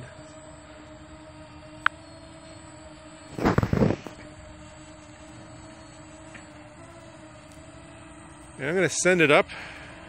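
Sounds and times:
drone rotors humming: 0.0 - 10.0.

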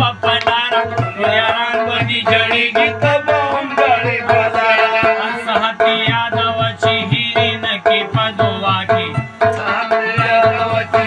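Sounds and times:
hand percussion beat: 0.0 - 11.0.

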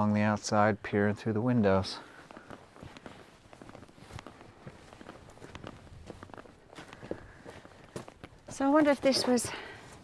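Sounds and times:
footsteps walking: 2.0 - 10.0.

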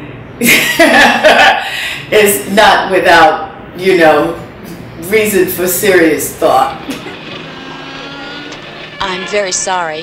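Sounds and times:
vehicle engine drone: 4.5 - 10.0.

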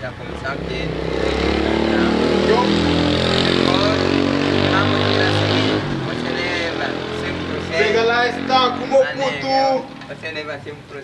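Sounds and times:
vehicle engine running: 0.0 - 10.4.

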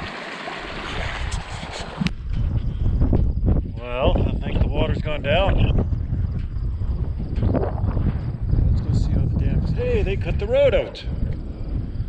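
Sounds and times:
water rushing through dam gap: 0.0 - 2.1.

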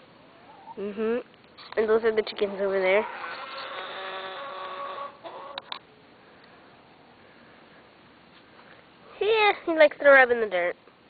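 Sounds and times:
hen clucks: 2.9 - 5.8
hen drawn-out call: 2.9 - 5.8.

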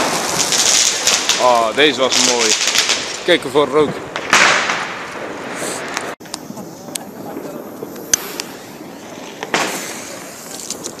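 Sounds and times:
firecrackers cracking: 0.0 - 11.0
loud firecracker bang: 0.0 - 11.0.

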